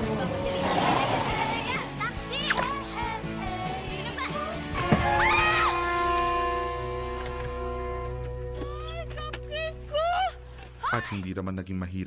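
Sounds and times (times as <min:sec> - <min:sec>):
young woman shouting: 0:08.8 - 0:11.1.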